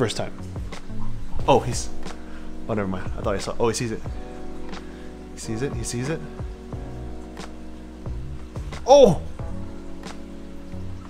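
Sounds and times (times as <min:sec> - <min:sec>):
background music sustained tones: 0:00.0 - 0:11.0
man exclaiming: 0:08.8 - 0:09.4.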